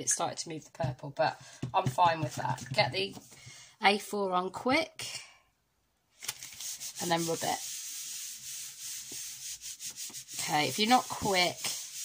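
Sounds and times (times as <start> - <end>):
palm rubbing on paper: 6.4 - 12.0.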